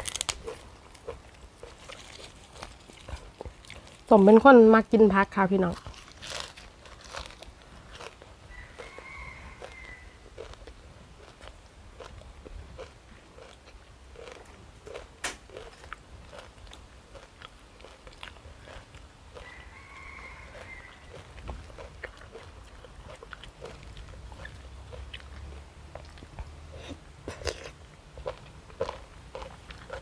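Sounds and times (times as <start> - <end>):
crunchy chewing: 0.0 - 4.6, 5.6 - 30.0.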